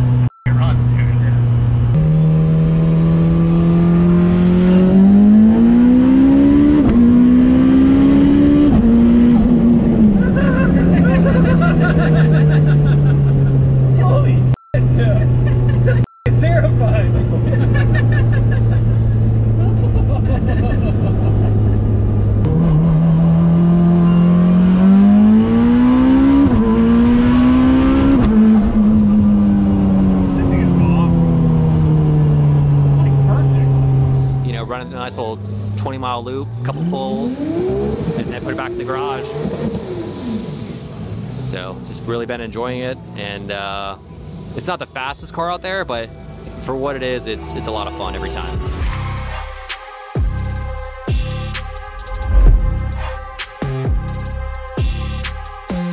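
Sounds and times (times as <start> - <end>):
turbo car engine revving: 0.0 - 42.5, 48.3 - 55.9
passengers laughing: 10.1 - 14.0, 15.0 - 16.1, 17.1 - 22.1.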